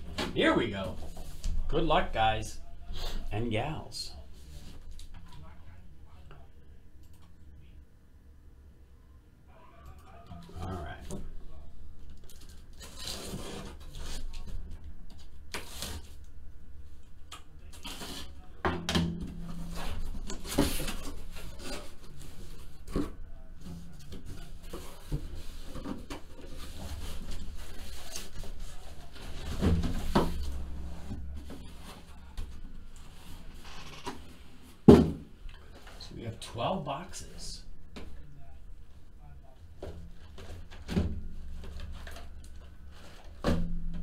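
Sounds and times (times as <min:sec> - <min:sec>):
low steady hum: 0:00.0 - 0:44.0
cardboard scraping and rubbing: 0:12.8 - 0:14.5.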